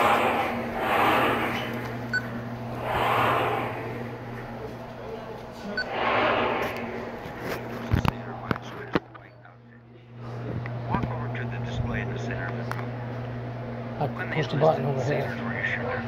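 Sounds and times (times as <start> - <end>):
indistinct voices echoing: 0.0 - 5.1, 5.8 - 8.9
steady low hum: 0.0 - 14.5.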